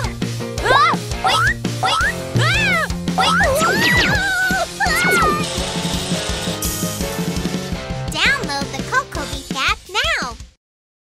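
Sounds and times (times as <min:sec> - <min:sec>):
bouncy cartoon music: 0:00.0 - 0:10.6
cartoon animal voice squealing: 0:01.3 - 0:05.5.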